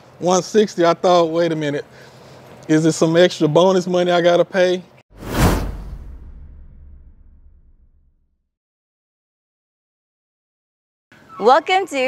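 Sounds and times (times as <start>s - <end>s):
whoosh transition effect: 5.1s - 8.3s
low rumbling tail: 5.2s - 8.4s.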